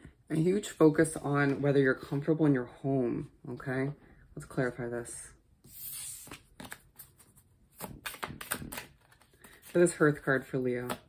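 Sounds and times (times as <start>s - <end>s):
cards sliding rustle: 5.7s - 9.9s.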